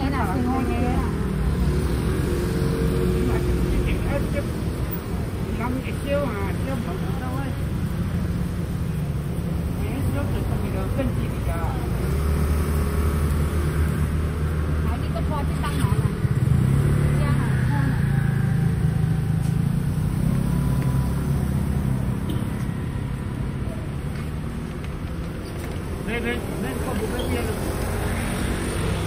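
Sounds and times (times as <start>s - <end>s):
people talking: 0.0s - 1.2s, 17.1s - 18.3s, 26.1s - 27.7s
street traffic: 0.0s - 29.0s.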